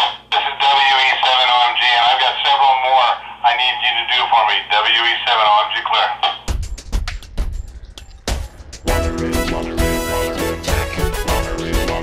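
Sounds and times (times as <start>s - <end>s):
voice over handheld radio speaker: 0.0s - 6.5s.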